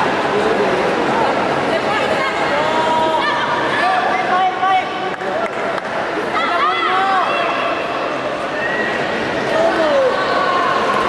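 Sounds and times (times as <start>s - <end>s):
crowd shouting in hall: 1.7s - 11.0s.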